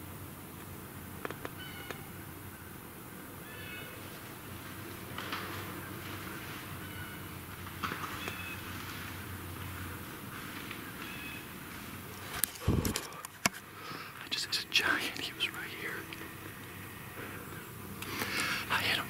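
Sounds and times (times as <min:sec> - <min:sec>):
camera handling noise: 0:12.3 - 0:13.7.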